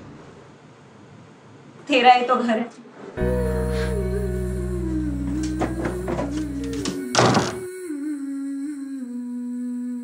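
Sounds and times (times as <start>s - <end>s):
soft background music: 3.2s - 8.2s
door slamming shut: 5.3s - 7.7s.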